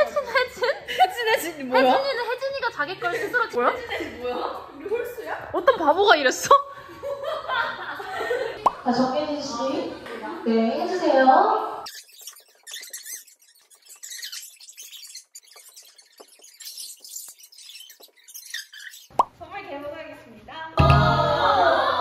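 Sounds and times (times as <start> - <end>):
loud voices: 20.8 - 22.0.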